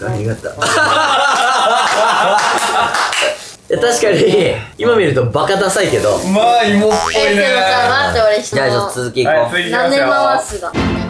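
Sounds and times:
voice: 6.7s - 8.9s
springy boing: 6.9s - 7.4s
rising pitch glide: 6.9s - 7.6s.

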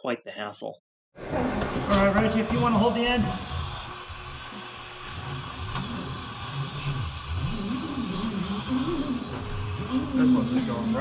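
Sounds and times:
vacuum hose droning whir: 1.2s - 11.0s.

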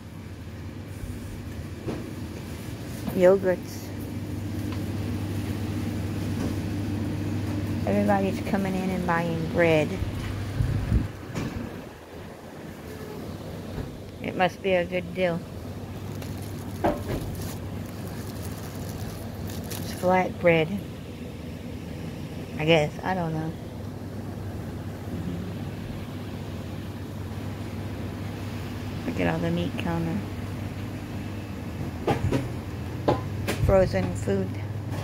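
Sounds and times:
refrigerator and air conditioning hum: 0.0s - 35.0s.

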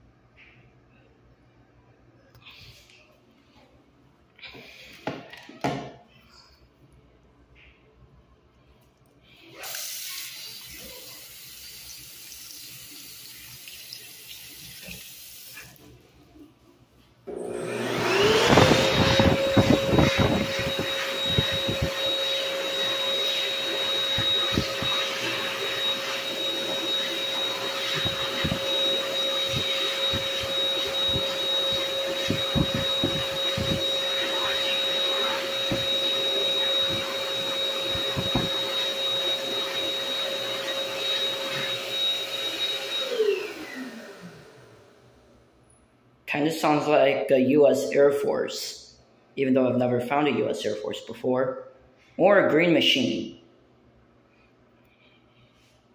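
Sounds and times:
hand dryer motor whine: 17.3s - 45.0s.

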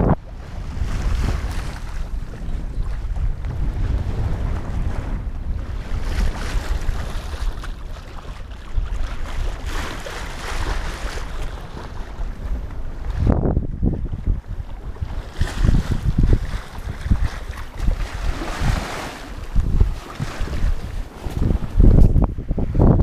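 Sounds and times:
water rushing along hull: 0.0s - 23.0s
wind buffeting microphone: 0.0s - 23.0s.

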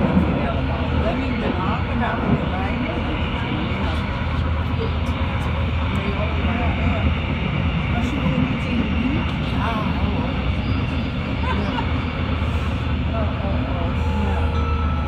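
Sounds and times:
faint passenger voices: 0.0s - 15.0s
train wheels rumbling on rails: 0.0s - 15.0s.

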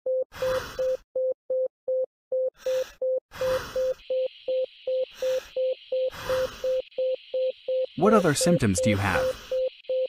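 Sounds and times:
patient monitor beeping: 0.1s - 10.0s.

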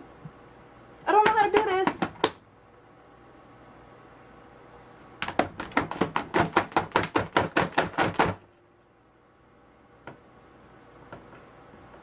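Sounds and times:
laptop keyboard keys tapped rapidly: 5.2s - 8.4s.

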